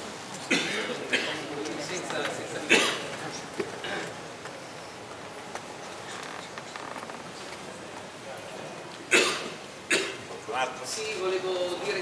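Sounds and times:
crowd murmur: 0.0 - 12.0
person coughing: 0.5 - 1.4, 2.7 - 3.1, 9.1 - 10.2.

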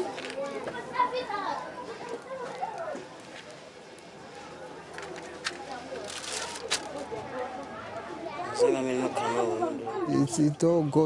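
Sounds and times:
children talking: 0.0 - 11.0.

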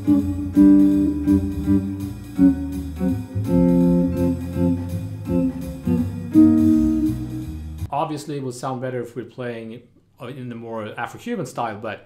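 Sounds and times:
bass notes: 0.0 - 7.9
electric guitar chord stabs: 0.0 - 7.9.

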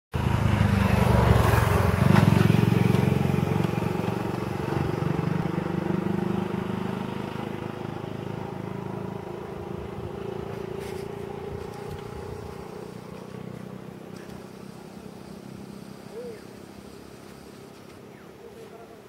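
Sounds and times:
vehicle engine running: 0.2 - 19.0.

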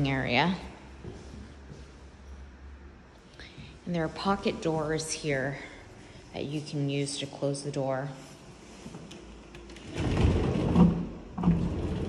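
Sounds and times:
pocket door rolling on track: 9.8 - 12.0.

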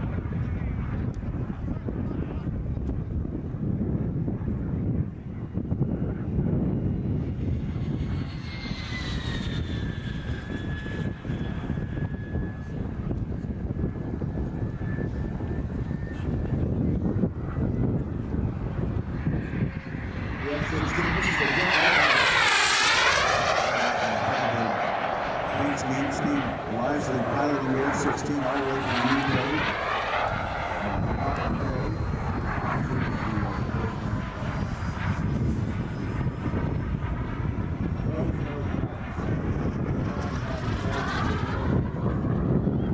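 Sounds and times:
model jet turbine whine: 0.0 - 42.9.

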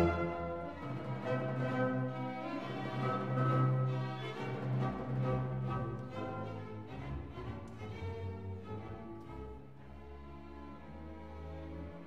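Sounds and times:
string orchestra music: 0.0 - 12.0.

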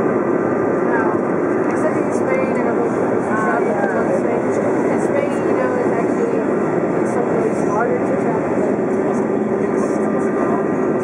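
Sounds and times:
constant engine hum: 0.0 - 11.0
jet airliner cabin rush: 0.0 - 11.0.

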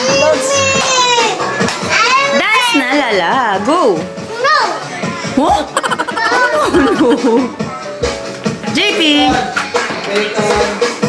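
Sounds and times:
background music: 0.0 - 11.0
children calling out: 5.8 - 7.0.

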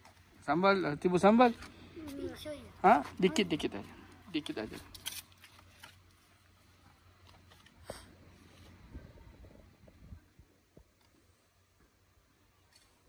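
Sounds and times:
faint low rumble: 6.2 - 12.6.

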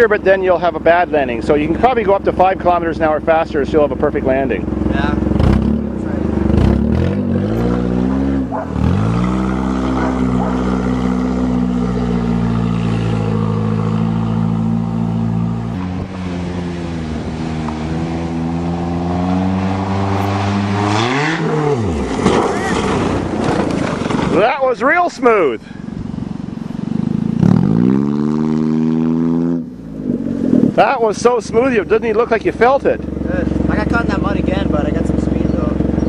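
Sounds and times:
car engine revving hard: 1.5 - 24.5, 26.8 - 36.0.

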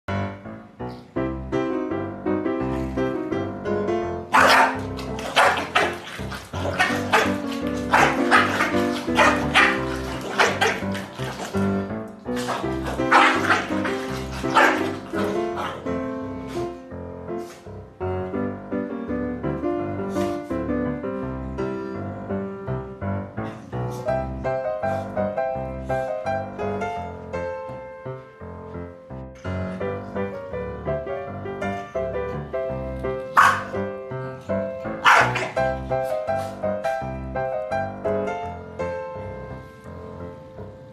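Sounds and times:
background music: 0.1 - 40.9
dogs barking: 4.3 - 15.9, 33.3 - 33.8, 35.0 - 35.8.

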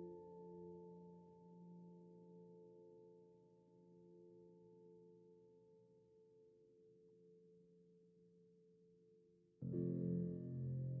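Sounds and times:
faint sustained piano chord: 9.6 - 11.0.

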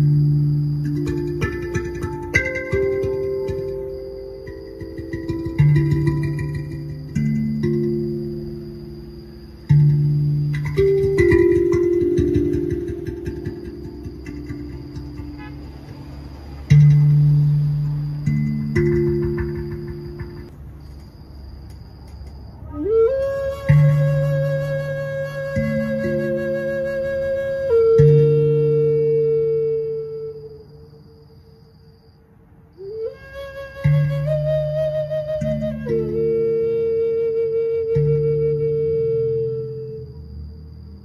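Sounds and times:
steel tongue drum notes ringing: 0.0 - 20.6.

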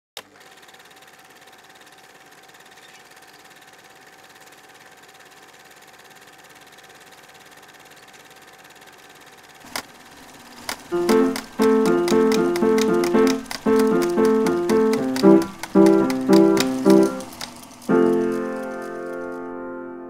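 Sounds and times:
mechanical whirring hum: 5.8 - 19.6
click: 10.6 - 19.4.

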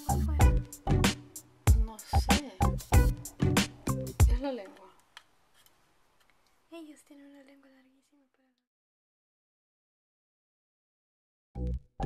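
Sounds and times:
person speaking: 0.0 - 0.4, 1.8 - 2.9.

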